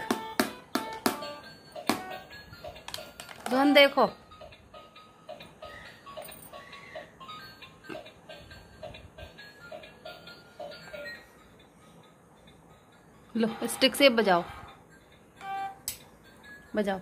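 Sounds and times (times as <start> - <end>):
toy playing electronic beeping tune: 0.2 - 17.0.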